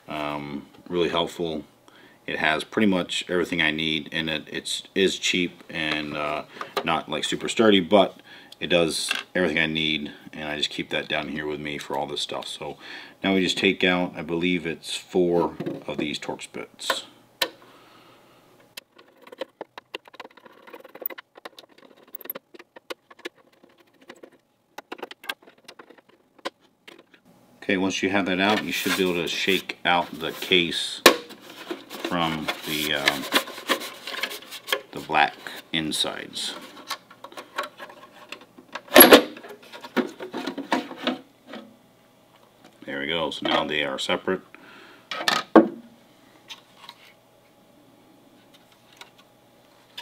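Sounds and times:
plastic case being handled: 0:18.8 - 0:27.2
plastic rattles and scrapes: 0:18.8 - 0:27.2, 0:31.2 - 0:35.0, 0:36.5 - 0:41.6.

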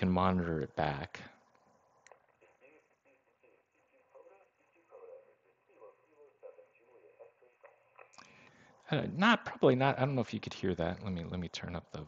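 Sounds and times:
man's voice over radio speaker: 0:00.0 - 0:01.4.

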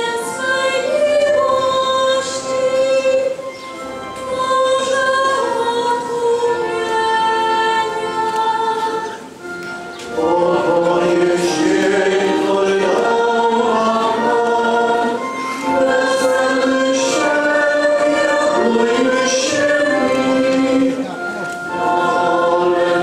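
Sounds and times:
many voices singing a hymn: 0:00.0 - 0:23.0.

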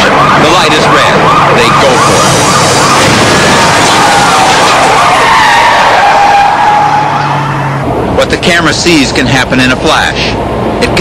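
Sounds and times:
police siren wailing: 0:00.0 - 0:08.3
road and engine noise: 0:00.0 - 0:11.0.

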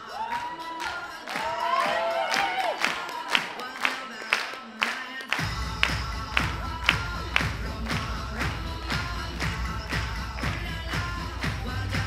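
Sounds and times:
dance music beat: 0:00.0 - 0:12.0
deep bass line: 0:05.4 - 0:12.0.

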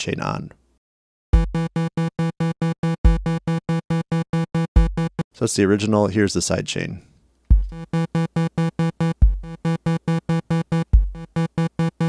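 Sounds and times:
buzzy synthesizer pulsing: 0:01.4 - 0:05.3, 0:07.5 - 0:12.0
electronic kick drum: 0:01.4 - 0:05.3, 0:07.5 - 0:12.0.

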